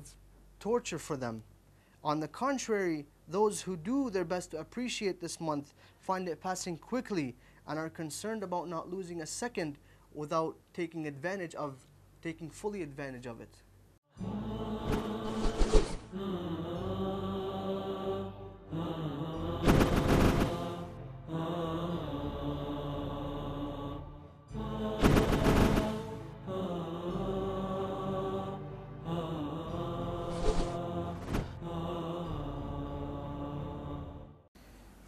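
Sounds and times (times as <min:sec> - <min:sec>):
chant-like background music: 0:14.1 - 0:34.5.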